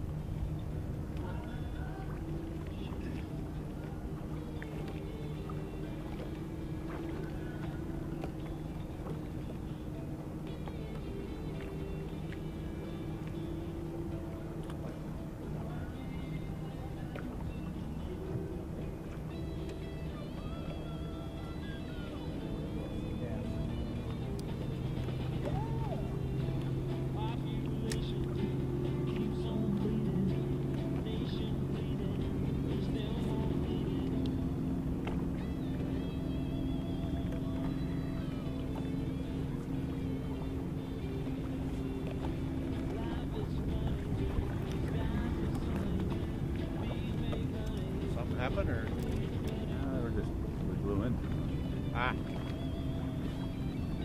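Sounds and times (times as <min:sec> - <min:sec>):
boat motor humming: 0:00.0 - 0:54.0
radio playing music with voice: 0:15.3 - 0:24.4, 0:26.2 - 0:35.0, 0:35.9 - 0:54.0.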